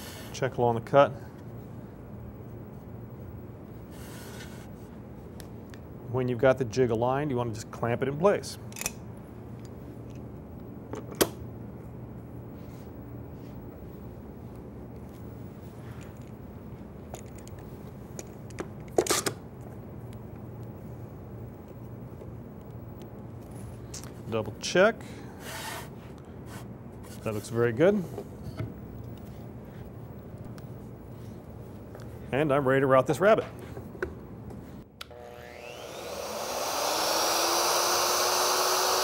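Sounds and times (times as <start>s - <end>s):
steady low hum: 0.0s - 39.0s.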